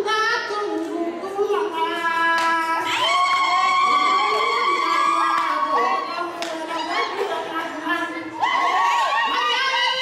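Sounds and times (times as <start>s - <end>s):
shrill high celebratory cry: 2.8s - 6.2s, 8.2s - 10.0s.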